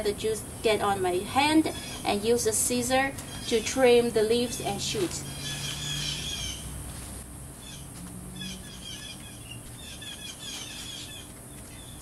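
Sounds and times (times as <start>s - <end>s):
songbirds chirping: 0.0s - 6.8s, 7.6s - 12.0s.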